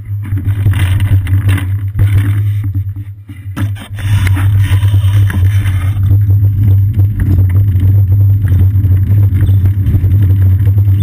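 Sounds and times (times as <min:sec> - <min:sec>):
bicycle road rumble: 0:00.0 - 0:11.0.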